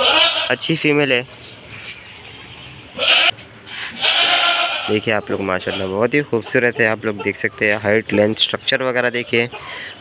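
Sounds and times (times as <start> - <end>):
goat bleating: 0.0 - 0.8, 2.9 - 6.2.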